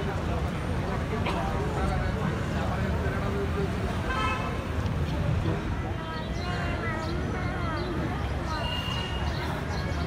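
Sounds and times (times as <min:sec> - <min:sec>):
crowd chattering: 0:00.0 - 0:10.0.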